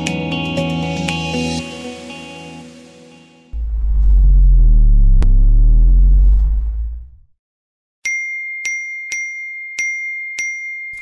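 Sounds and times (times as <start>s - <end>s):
sweeping whoosh: 3.6s - 7.3s
deep boom: 3.6s - 7.4s.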